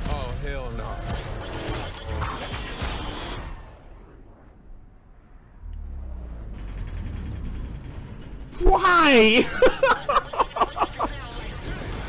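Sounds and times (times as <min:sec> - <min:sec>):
low rumble: 0:03.6 - 0:08.6
mechanical clattering and rattling: 0:06.4 - 0:08.6.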